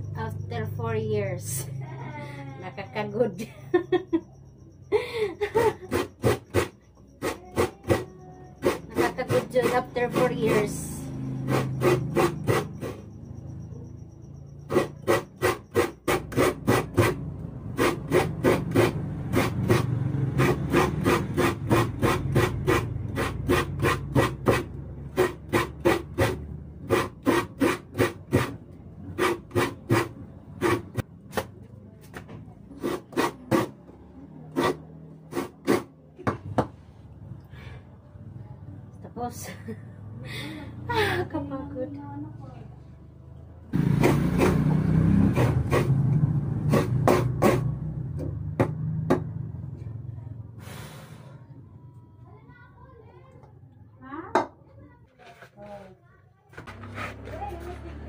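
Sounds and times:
coconut grating rasping scrape: 0:05.6 - 0:13.2, 0:14.6 - 0:31.0, 0:32.7 - 0:33.8, 0:34.5 - 0:35.9, 0:43.8 - 0:47.8, 0:56.6 - 0:58.0.

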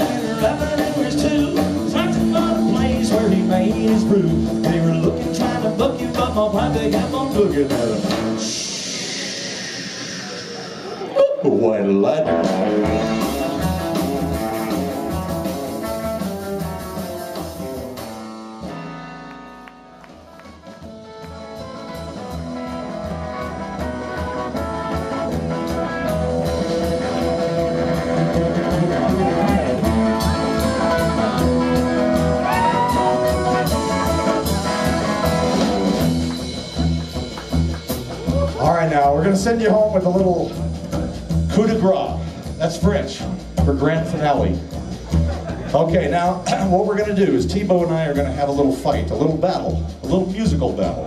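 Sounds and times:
upright bass: 0:00.0 - 0:08.7, 0:10.9 - 0:51.0
electric guitar: 0:00.0 - 0:11.2, 0:11.9 - 0:39.3
drum kit: 0:00.0 - 0:51.0.

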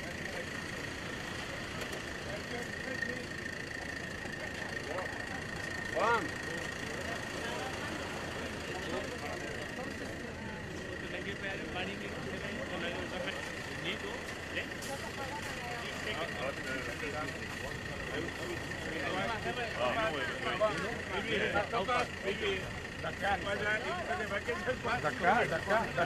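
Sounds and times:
high-pitched machine whine: 0:00.0 - 0:26.0
indistinct chatter: 0:00.0 - 0:26.0.

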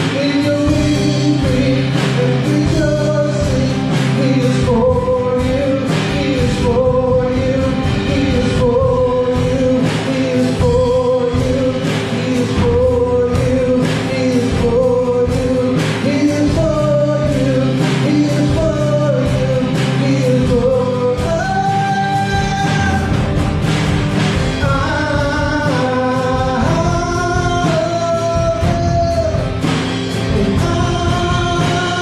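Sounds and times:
acoustic guitar strumming: 0:00.0 - 0:32.0
electric guitar: 0:00.0 - 0:32.0
man singing: 0:00.0 - 0:32.0
steady drum beat: 0:00.0 - 0:32.0.

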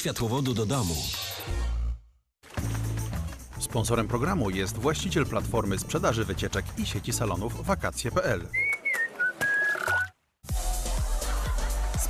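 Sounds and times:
music: 0:00.0 - 0:08.5, 0:10.4 - 0:12.0
whistled jingle: 0:08.5 - 0:10.2.

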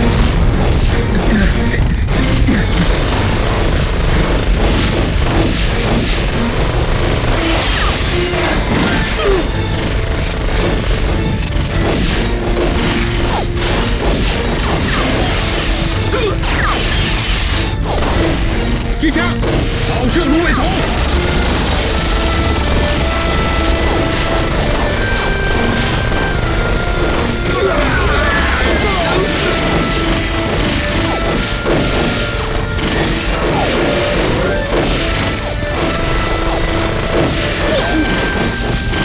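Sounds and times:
rapid gunfire: 0:00.0 - 0:39.0.

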